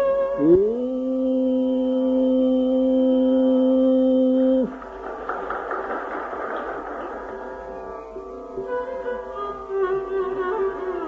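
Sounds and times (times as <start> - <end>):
string accompaniment: 4.6 - 11.0.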